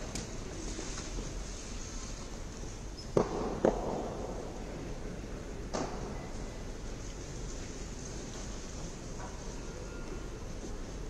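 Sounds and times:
hall background noise: 0:00.0 - 0:11.0.

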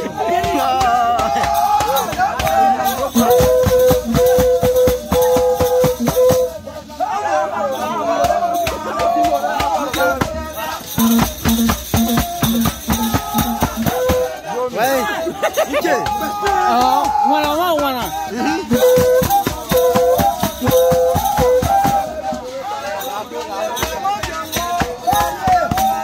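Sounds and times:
shaken rattles and percussion: 0:00.0 - 0:26.0.

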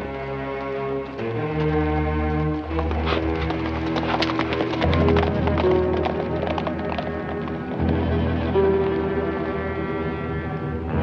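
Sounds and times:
horse hooves clip-clopping on dirt: 0:00.0 - 0:09.4
music score of sustained notes: 0:00.0 - 0:11.0.

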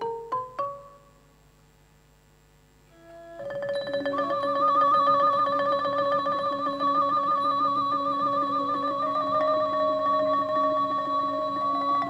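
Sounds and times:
wavering held melody: 0:00.0 - 0:01.2, 0:02.9 - 0:12.0
mallet percussion notes: 0:03.4 - 0:12.0.

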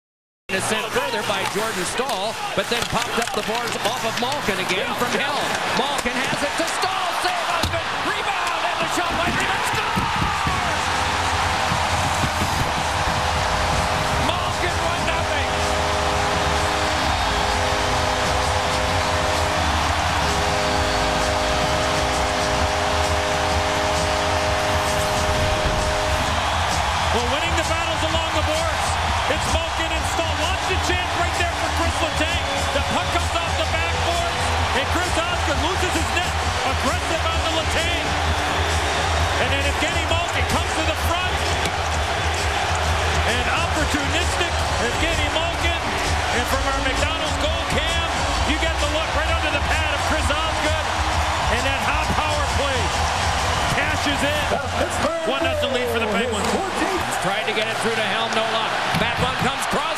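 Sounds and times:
crowd cheering: 0:00.5 - 0:59.9
music playing: 0:00.5 - 0:59.9
arena goal horn blasts: 0:14.5 - 0:26.6.

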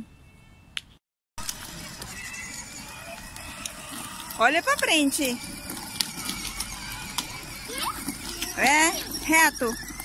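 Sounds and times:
toy motorbike motor whining: 0:01.4 - 0:10.0.

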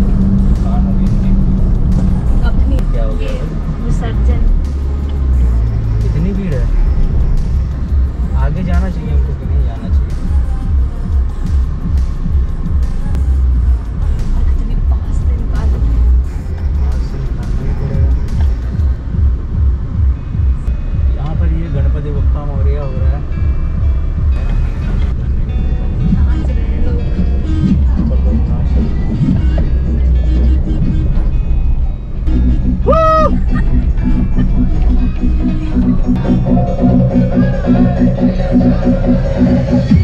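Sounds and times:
song with heavy bass beat: 0:00.0 - 0:31.6, 0:32.2 - 0:40.0.

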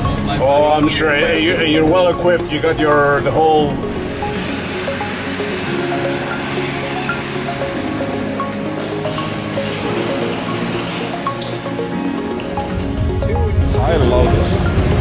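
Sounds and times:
background music with held chords: 0:00.0 - 0:15.0.

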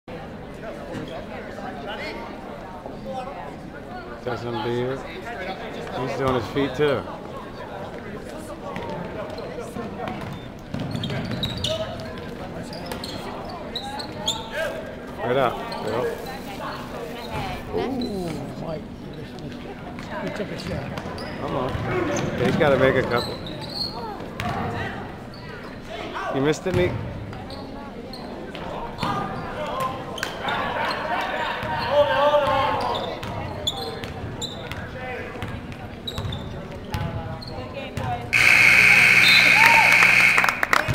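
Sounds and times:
crowd voices and shouts: 0:38.3 - 0:40.9
scoreboard buzzer: 0:38.4 - 0:40.9.

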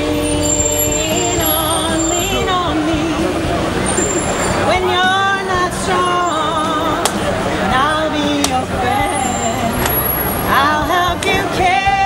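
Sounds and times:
city traffic rumble: 0:00.0 - 0:12.0
protesters chanting and shouting: 0:00.0 - 0:12.0.

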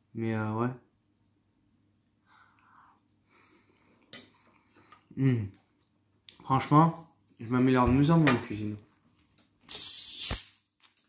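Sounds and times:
gas hissing from soda bottle: 0:09.7 - 0:10.6.

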